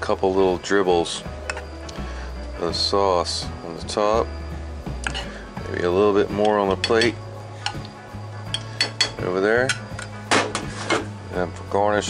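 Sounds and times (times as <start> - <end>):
soft background music: 0.0 - 12.0
metal spoon clinking on plate: 5.0 - 5.3, 6.4 - 7.9, 8.5 - 10.1.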